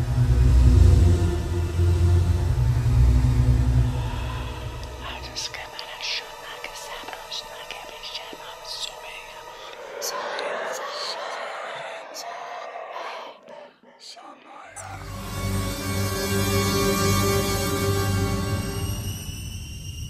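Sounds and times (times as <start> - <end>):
deep low drone: 0.0 - 7.9, 14.8 - 20.0
breathy whispering: 3.8 - 15.4.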